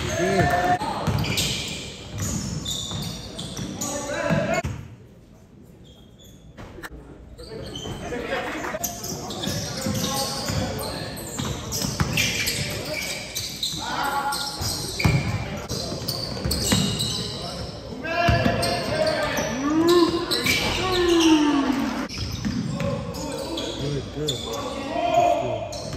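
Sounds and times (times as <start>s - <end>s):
voices in a hall: 0.0s - 25.9s.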